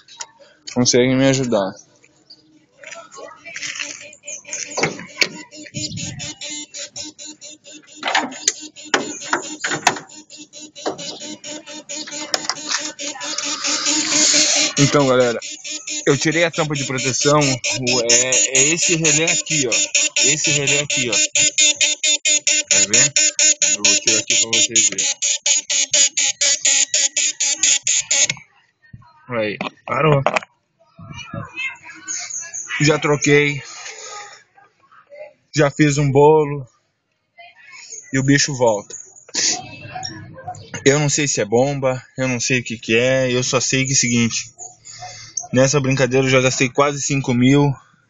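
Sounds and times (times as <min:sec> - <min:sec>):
relay clicking rapidly: 0:04.8 - 0:28.4.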